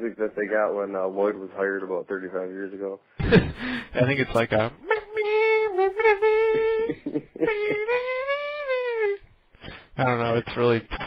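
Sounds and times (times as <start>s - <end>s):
man singing high wordless note: 4.8s - 9.2s.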